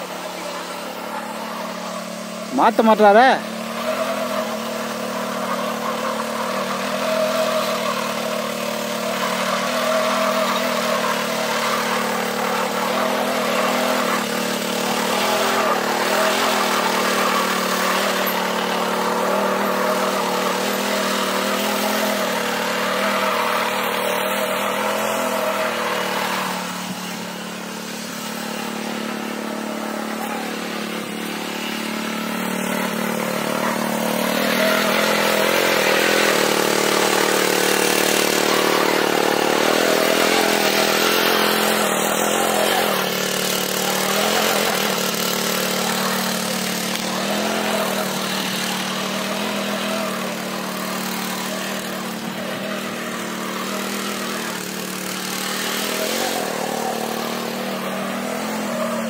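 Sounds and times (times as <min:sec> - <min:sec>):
power weeder engine tilling soil: 0:00.0 - 0:59.0.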